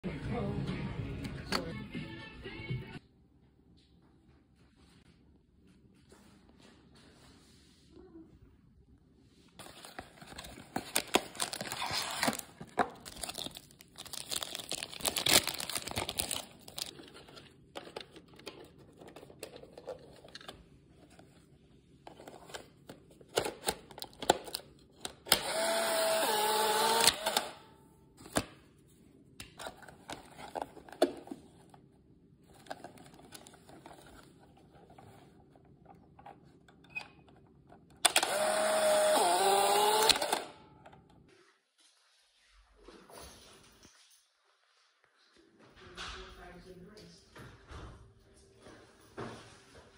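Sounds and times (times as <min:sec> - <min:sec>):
foil wrapper crinkling: 0:09.6 - 0:17.2
camera ejection motor whirring: 0:25.3 - 0:27.6, 0:38.0 - 0:40.6.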